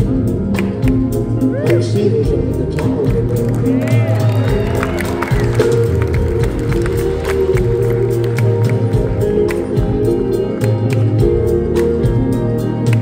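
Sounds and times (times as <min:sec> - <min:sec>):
bass guitar: 0:00.0 - 0:13.0
electric guitar: 0:00.0 - 0:13.0
keyboard chords: 0:00.0 - 0:13.0
steady drum beat: 0:00.0 - 0:13.0
crowd voices: 0:01.3 - 0:13.0.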